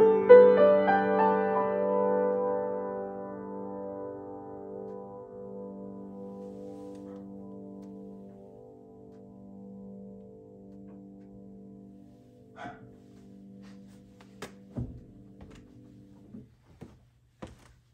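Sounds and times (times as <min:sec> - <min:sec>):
piano chord: 0:00.0 - 0:16.6
knocks and clicks at piano: 0:14.3 - 0:16.5.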